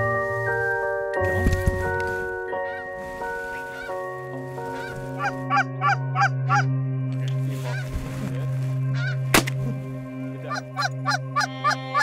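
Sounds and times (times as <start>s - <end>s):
background music sustained chords: 0.0s - 12.0s
geese honking: 2.6s - 6.8s, 7.4s - 8.1s, 8.8s - 9.4s, 10.4s - 12.0s.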